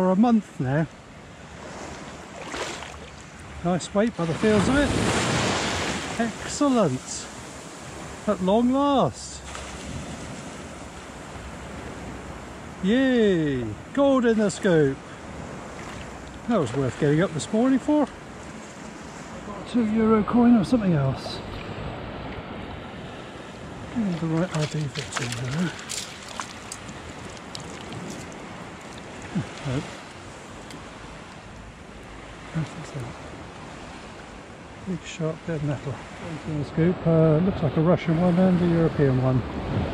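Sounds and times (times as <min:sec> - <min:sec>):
shallow seawater washing: 0:00.6 - 0:36.6
sea water washing around legs: 0:01.7 - 0:03.4, 0:23.9 - 0:31.6.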